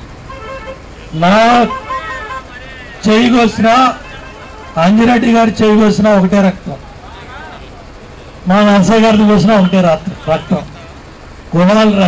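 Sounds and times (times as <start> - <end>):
faint steady tones: 0.0 - 12.0
man shouting into a microphone: 1.1 - 11.0.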